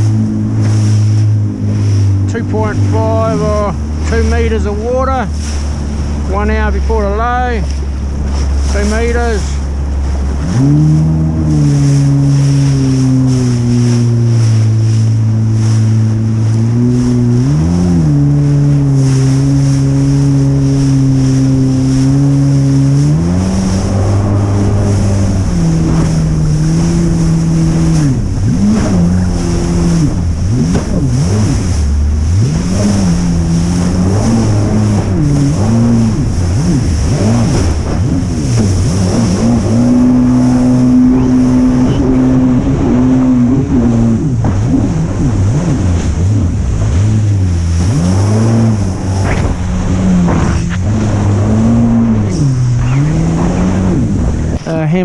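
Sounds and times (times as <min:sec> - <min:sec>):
jet ski engine: 0:00.0 - 0:55.0
water rushing: 0:00.0 - 0:55.0.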